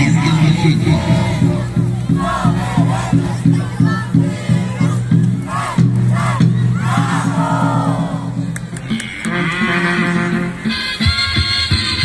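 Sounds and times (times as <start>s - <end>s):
higher melody: 0.0s - 12.0s.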